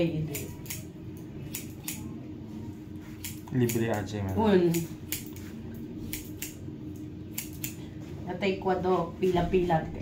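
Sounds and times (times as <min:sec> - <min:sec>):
scissors snipping hair: 0:00.2 - 0:02.1, 0:03.0 - 0:06.6, 0:07.3 - 0:07.8.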